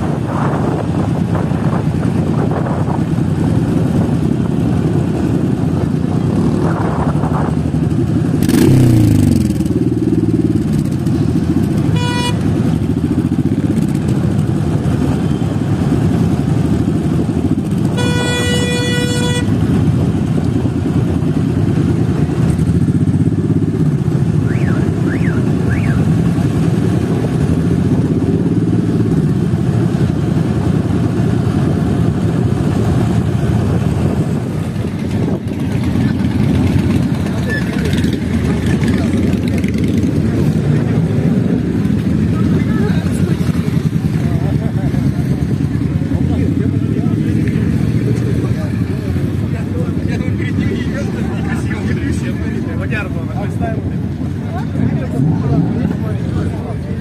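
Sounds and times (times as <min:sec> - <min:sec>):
motorcycle engines running: 0:00.0 - 0:57.0.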